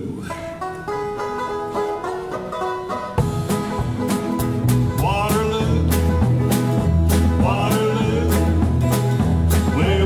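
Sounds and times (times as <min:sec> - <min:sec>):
banjo picking: 0:00.1 - 0:10.0.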